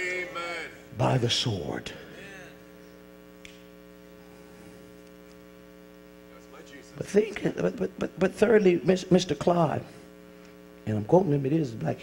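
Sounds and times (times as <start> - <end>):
low electrical mains hum: 0.0 - 12.0
faint click: 3.4 - 3.6.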